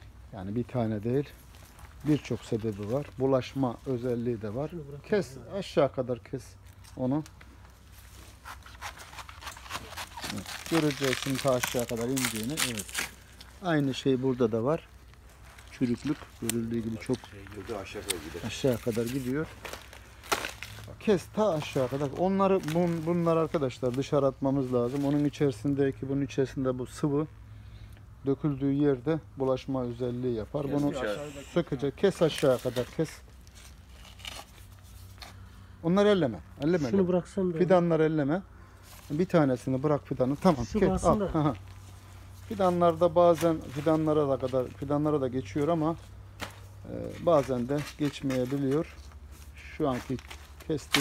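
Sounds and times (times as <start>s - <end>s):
rustling of moist stem: 0.0s - 26.1s, 29.8s - 36.8s, 38.7s - 51.0s
low steady background rumble: 0.0s - 51.0s
man talking: 0.3s - 1.4s, 2.0s - 7.3s, 10.2s - 14.9s, 15.7s - 19.6s, 20.9s - 27.3s, 28.2s - 33.2s, 35.8s - 38.5s, 39.1s - 41.6s, 42.5s - 46.0s, 46.8s - 51.0s
knife cutting plant stem: 8.4s - 13.3s.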